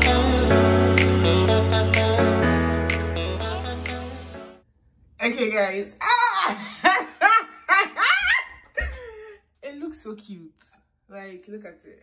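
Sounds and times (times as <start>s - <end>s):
woman speaking: 5.2s - 6.6s, 9.6s - 12.0s
woman squealing: 6.0s - 6.7s
woman laughing: 6.0s - 9.5s.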